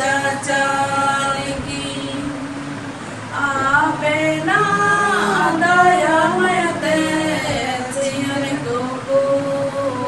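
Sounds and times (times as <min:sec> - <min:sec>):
group singing without instruments: 0:00.0 - 0:10.0.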